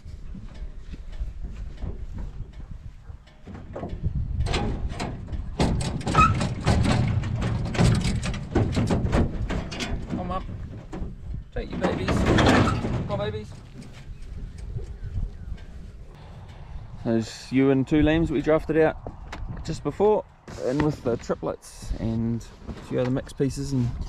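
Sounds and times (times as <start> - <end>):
sheep hooves clattering on metal mesh: 0.0 - 16.7
metal gate rattling: 0.3 - 14.8.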